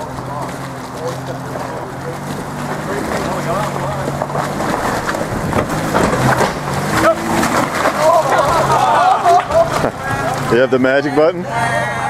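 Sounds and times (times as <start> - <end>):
clicks under tyres: 0.0 - 10.6
suv engine running: 0.0 - 12.0
people calling out: 6.8 - 12.0.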